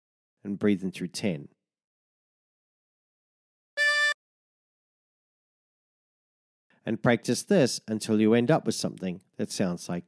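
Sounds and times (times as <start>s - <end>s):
harmonica draw note: 3.8s - 4.2s.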